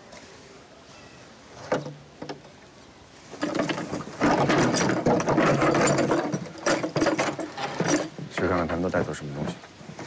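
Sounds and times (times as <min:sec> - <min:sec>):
wooden door rattling and creaking: 0:03.4 - 0:08.6.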